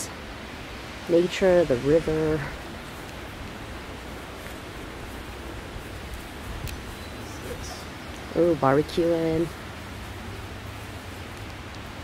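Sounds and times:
river water rushing: 0:00.0 - 0:12.0
faint clicks: 0:03.0 - 0:03.6, 0:06.1 - 0:06.9, 0:11.3 - 0:11.9.

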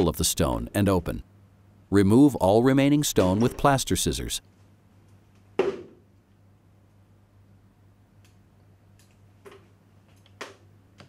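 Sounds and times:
faint clicks and snaps: 0:08.2 - 0:11.0.

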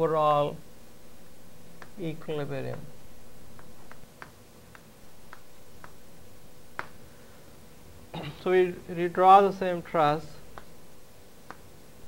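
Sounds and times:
chalk ticking on blackboard: 0:01.8 - 0:02.9, 0:03.5 - 0:06.0, 0:10.5 - 0:10.8, 0:11.4 - 0:11.7.

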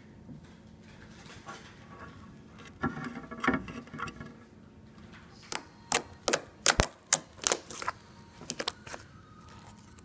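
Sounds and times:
slime squishing: 0:05.5 - 0:10.0.

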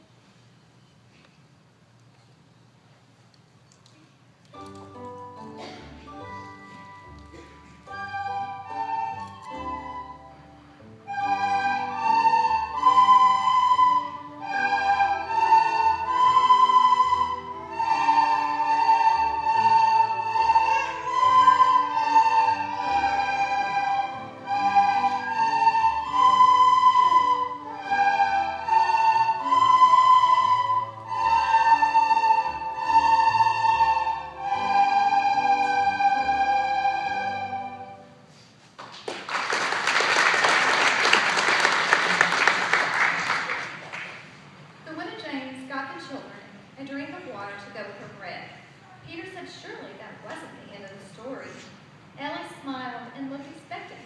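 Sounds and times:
children playing recorders: 0:07.1 - 0:38.5
applause: 0:38.8 - 0:44.4.

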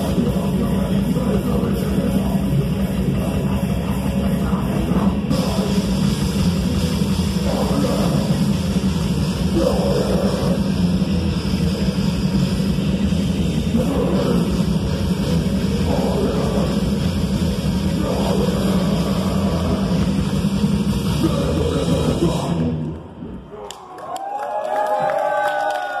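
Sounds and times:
metal band playing: 0:00.0 - 0:22.8
audience cheering and whooping: 0:23.4 - 0:26.0.

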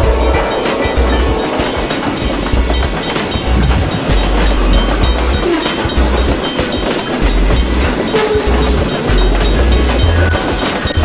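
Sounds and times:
train cars rolling past: 0:00.0 - 0:11.0
wheels clicking over rail joints: 0:00.0 - 0:11.0.

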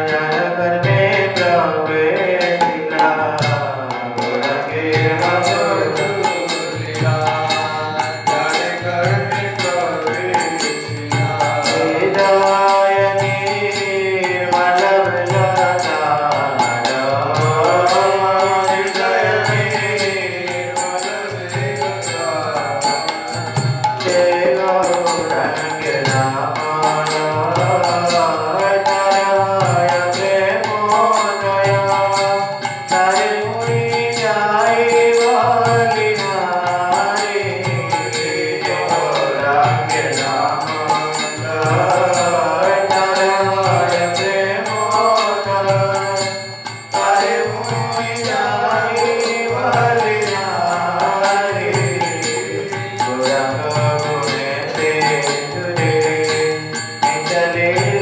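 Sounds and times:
devotional chanting: 0:00.0 - 0:58.0
hand cymbals beat: 0:00.0 - 0:58.0
sharp percussion strokes: 0:00.0 - 0:58.0.

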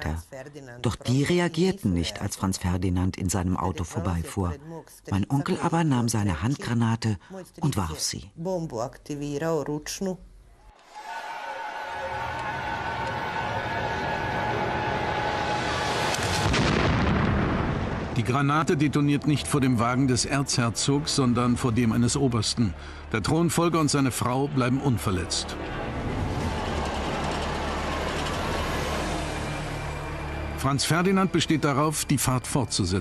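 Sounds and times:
low hum: 0:10.7 - 0:33.0
dense rumbling noise: 0:12.3 - 0:19.7, 0:25.4 - 0:31.6
explosion rumble and crackling burst: 0:16.1 - 0:18.8.

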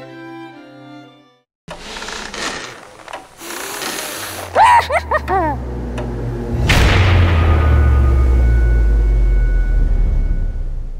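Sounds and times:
dry mechanical rattle: 0:01.7 - 0:04.6
high-pitched cackling laugh: 0:04.5 - 0:05.6.

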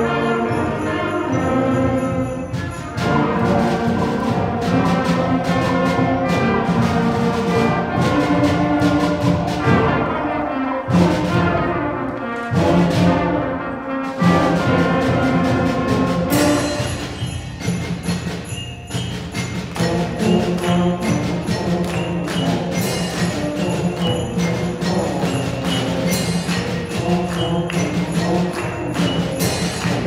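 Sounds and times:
concert band playing: 0:00.0 - 0:30.0
percussion strikes: 0:00.0 - 0:30.0.

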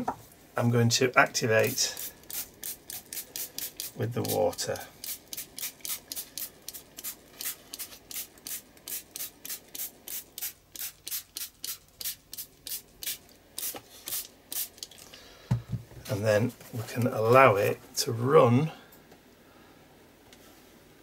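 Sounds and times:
water mister spraying: 0:01.6 - 0:14.9.

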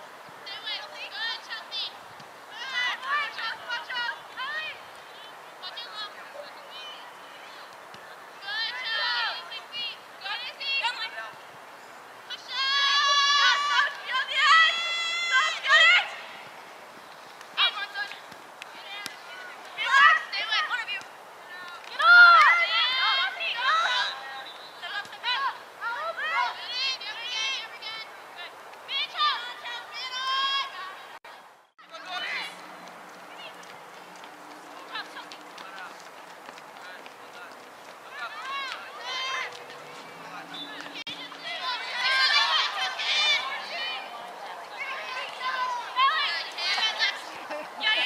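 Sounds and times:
outdoor background noise: 0:00.0 - 0:48.0.

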